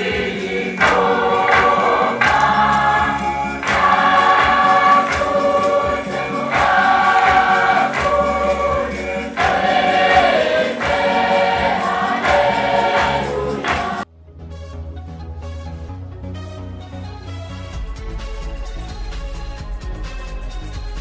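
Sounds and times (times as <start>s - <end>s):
choir singing a hymn: 0.0s - 14.0s
percussive beat: 0.0s - 14.0s.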